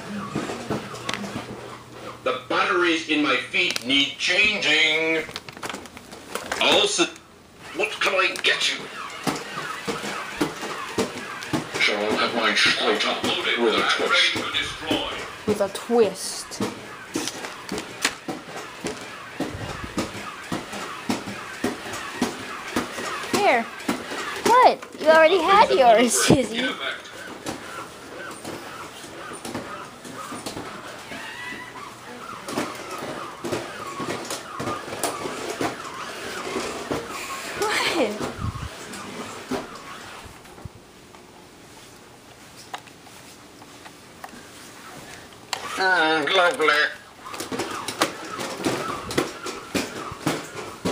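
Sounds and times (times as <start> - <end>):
toy robot gear motors whirring: 45.5 - 50.0.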